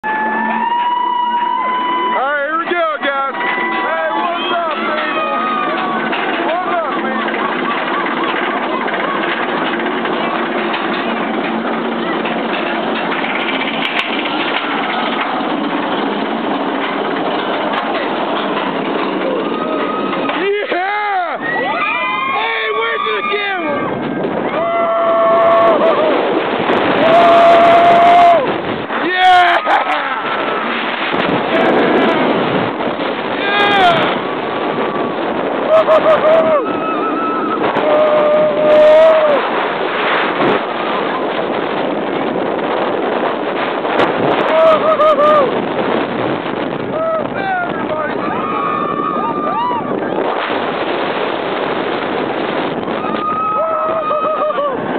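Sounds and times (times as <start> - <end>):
riders yelling and whooping: 0.0 - 10.2, 19.2 - 30.8, 33.3 - 39.6, 44.3 - 45.7, 46.9 - 50.4, 52.9 - 54.9
roller coaster train rumbling: 0.0 - 54.9
wind buffeting microphone: 1.5 - 54.9
rider crying out: 19.3 - 26.3, 33.3 - 39.4, 44.4 - 45.6, 53.0 - 54.9.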